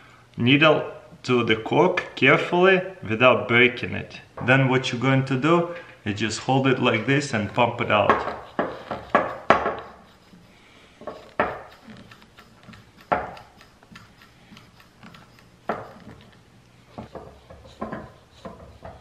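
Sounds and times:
hand pump plunger clacking: 7.0 - 19.0.

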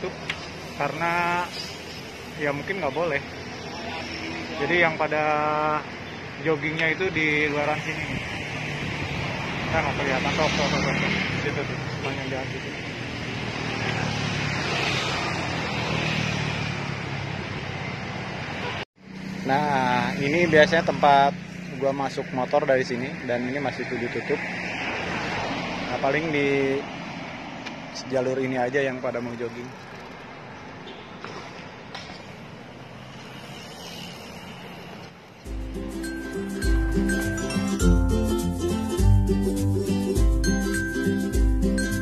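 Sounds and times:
motor traffic: 0.0 - 42.0
wind and road noise: 0.0 - 42.0.

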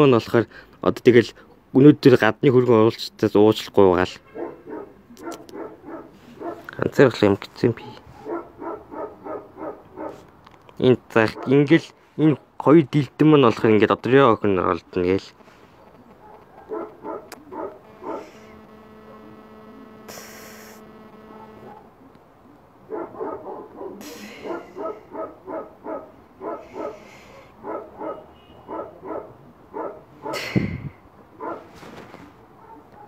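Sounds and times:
dog barking: 4.3 - 6.8, 7.8 - 10.3, 11.2 - 11.7, 16.1 - 19.7, 20.8 - 22.0, 22.9 - 30.5, 31.4 - 31.8, 32.5 - 33.0
steady hum: 16.8 - 21.9.

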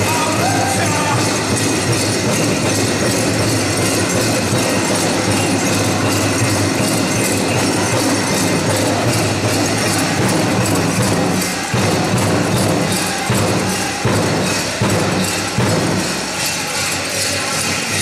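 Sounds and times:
pow wow drum music: 0.0 - 16.4
jingling of dancers' bells: 0.0 - 18.0.

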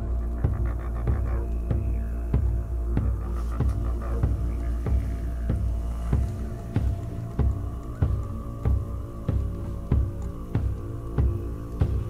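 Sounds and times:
drum beaten in steady beat: 0.0 - 12.0
steady low hum: 0.0 - 12.0.

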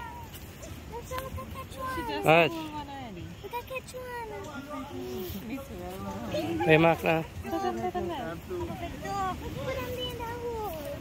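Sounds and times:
people and children talking: 0.0 - 11.0.

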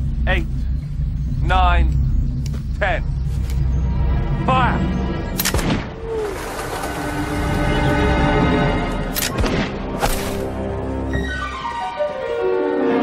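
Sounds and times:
tense orchestral music: 0.0 - 13.0.

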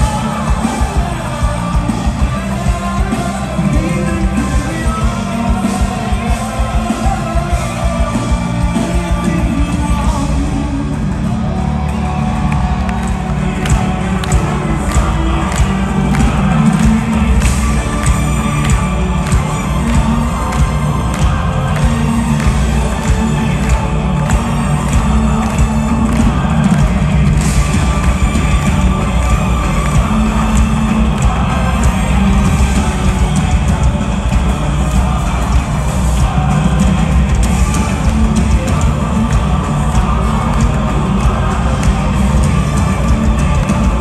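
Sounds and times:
crowd cheering and shouting: 0.0 - 44.0
heavy metal band playing: 0.0 - 44.0.

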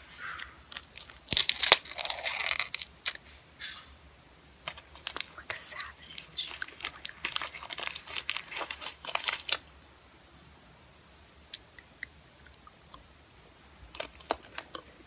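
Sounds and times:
plastic wrapper crinkling and tearing: 0.4 - 3.2, 4.6 - 9.7, 13.9 - 14.8.

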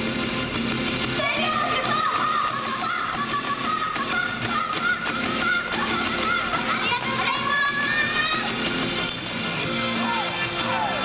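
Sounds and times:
upbeat pop music over speakers: 0.0 - 11.0.

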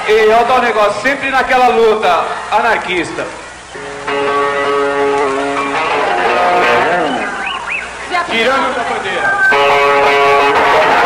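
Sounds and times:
electric guitars with bent notes: 3.3 - 11.0.

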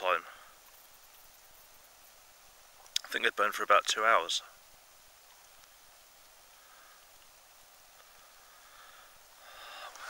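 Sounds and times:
fire log burning hiss: 0.0 - 10.0
faint high ticks: 2.8 - 3.2, 5.2 - 5.8, 7.0 - 8.5.

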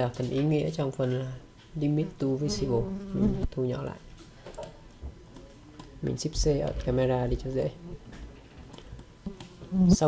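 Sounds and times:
microphone hiss and hum: 0.0 - 10.0.

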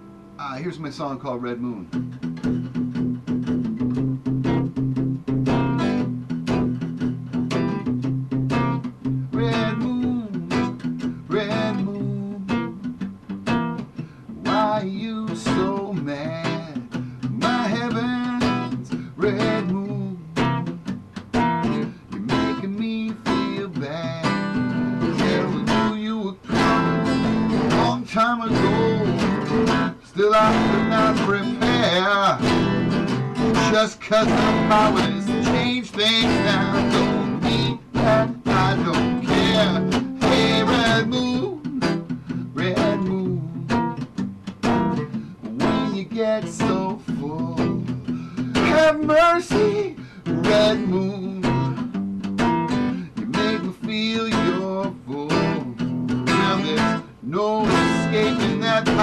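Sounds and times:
acoustic guitar strummed and picked: 0.0 - 59.0.

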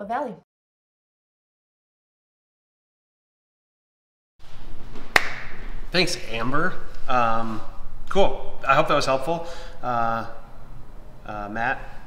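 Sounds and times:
microphone room noise: 4.4 - 12.0
man speaking: 5.9 - 10.5, 11.2 - 12.0.

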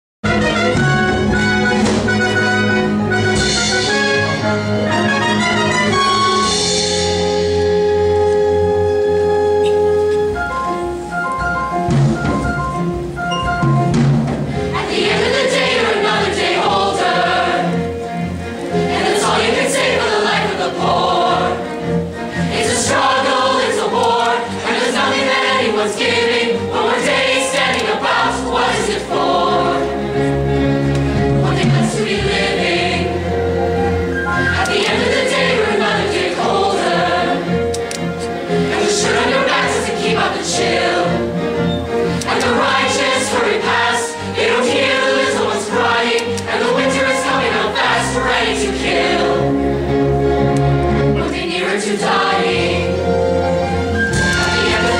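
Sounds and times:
instrumental accompaniment: 0.2 - 54.9
chorus singing: 14.5 - 54.9.

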